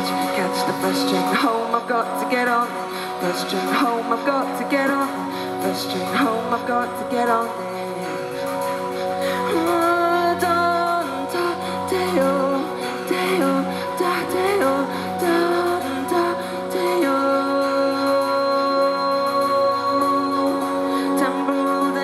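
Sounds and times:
synth keyboard pop music: 0:00.0 - 0:22.0.

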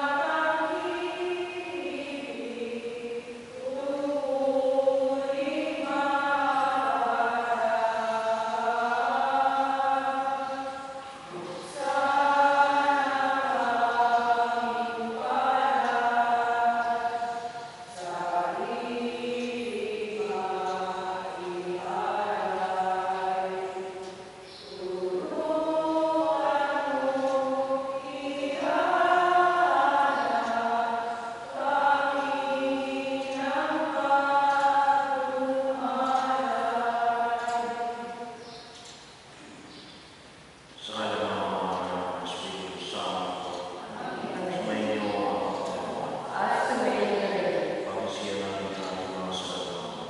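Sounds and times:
choir singing a hymn: 0:00.0 - 0:38.7, 0:40.8 - 0:50.0.

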